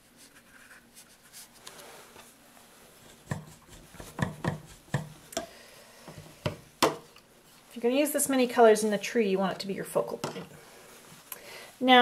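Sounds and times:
brush dabbing on paper: 3.0 - 5.3.

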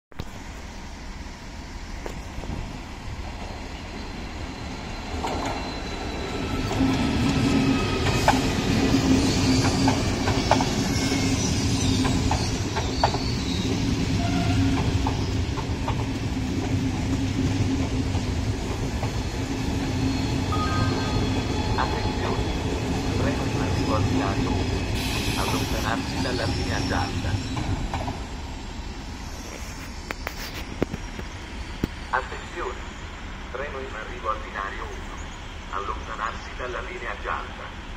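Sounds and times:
train rolling: 0.2 - 37.9
wheel squeals: 3.9 - 15.7.

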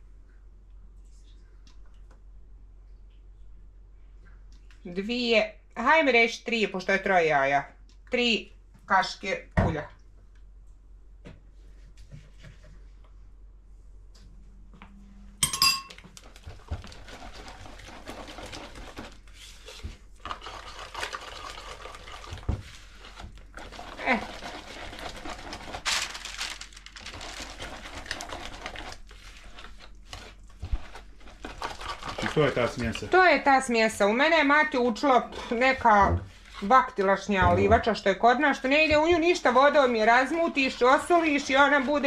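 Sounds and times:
whisk clinking against bowl: 15.4 - 16.0
whisk beating batter in bowl: 31.4 - 33.2.

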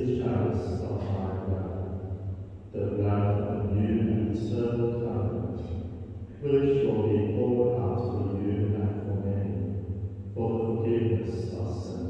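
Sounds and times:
man speaking: 0.0 - 2.0, 2.7 - 9.6, 10.4 - 12.0.

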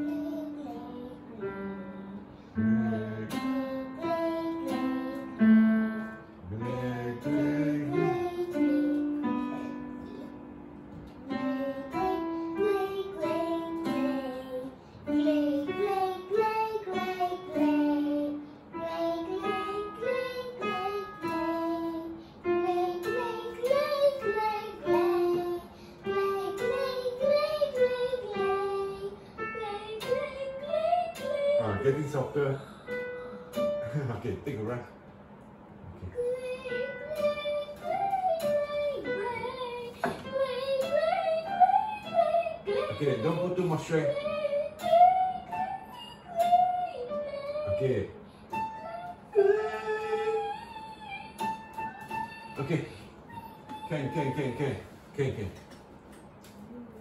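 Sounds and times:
girl singing vocal warm-up: 0.0 - 33.9, 36.0 - 55.5, 56.4 - 57.0.

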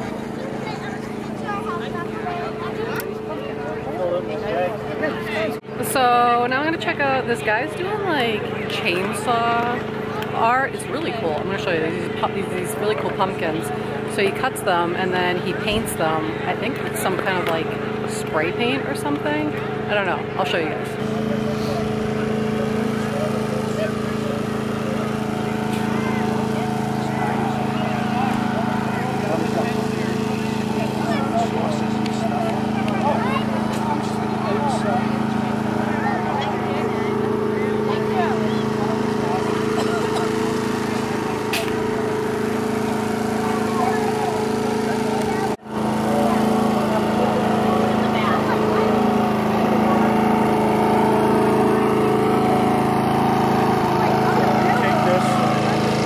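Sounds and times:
faint voices: 0.0 - 56.0
small engine running steadily: 0.0 - 56.0.

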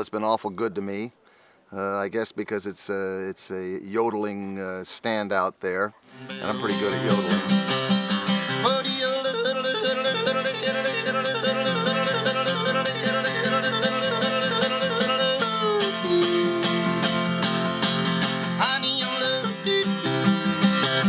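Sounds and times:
strummed acoustic guitar: 6.1 - 21.0
man yodeling: 6.3 - 7.7, 8.4 - 17.4, 18.6 - 21.0.

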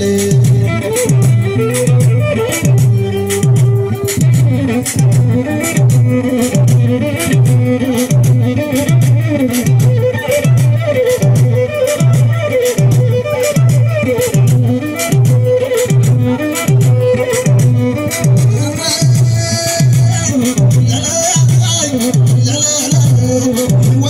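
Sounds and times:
amplified live band music: 0.0 - 24.0.

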